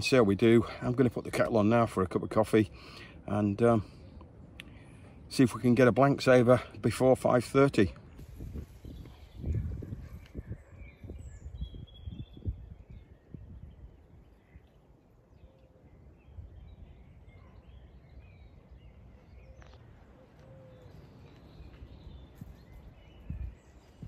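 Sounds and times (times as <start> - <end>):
faint birdsong chirps: 0.0 - 24.0
wind buffeting microphone: 8.0 - 14.6, 16.1 - 24.0.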